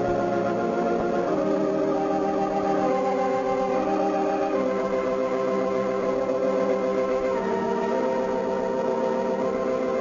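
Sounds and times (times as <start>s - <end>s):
organ holding a chord: 0.0s - 10.0s.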